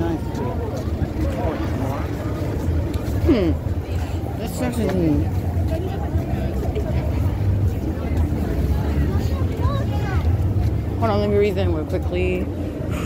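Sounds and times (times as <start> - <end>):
low rumble of traffic: 0.0 - 13.0
passers-by talking: 0.0 - 13.0.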